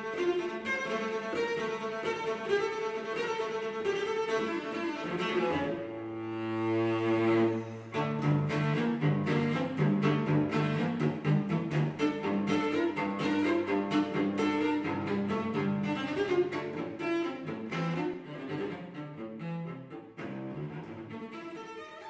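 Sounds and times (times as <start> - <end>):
bowed cello playing short notes: 4.1 - 22.0.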